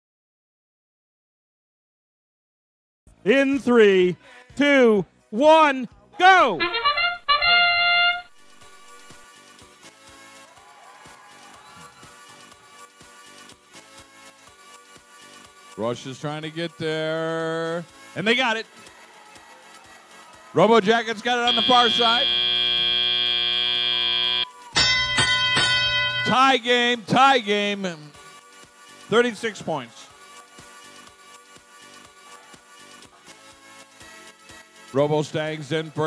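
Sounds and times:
electronic horn chord: 6.5 - 9.2, 21.4 - 26.4
electronic buzzing tone: 21.5 - 24.5
ringing bell-like signal: 21.5 - 26.5.

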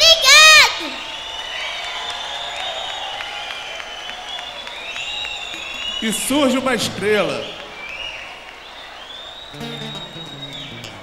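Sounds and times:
acoustic strings strumming chords: 9.6 - 11.0.

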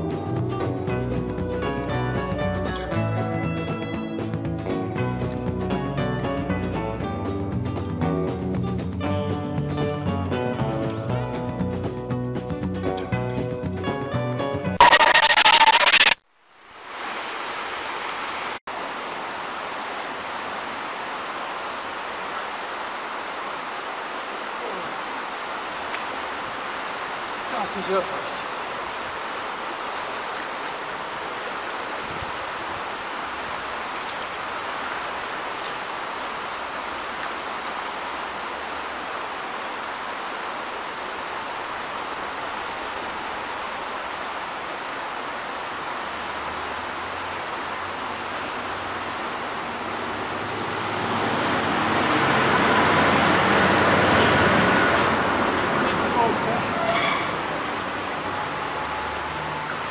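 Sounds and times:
river water rushing over stones: 14.8 - 59.9.

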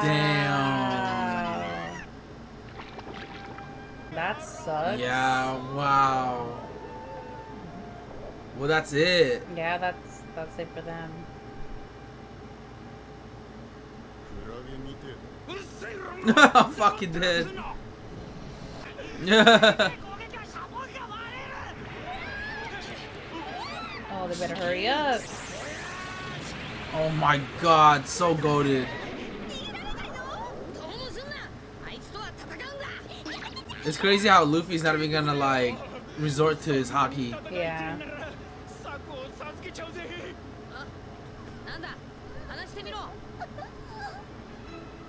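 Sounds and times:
water-like noise: 2.5 - 3.9, 21.4 - 33.7
cartoon character voices: 28.8 - 34.1.

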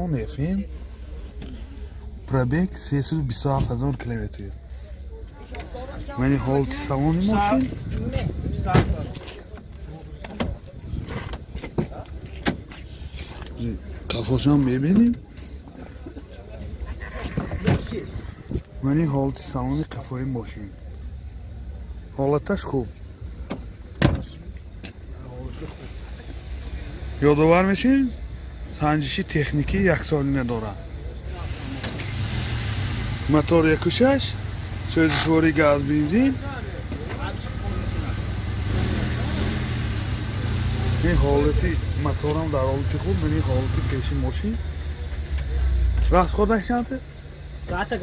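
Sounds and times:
car engine idling: 33.0 - 48.0.

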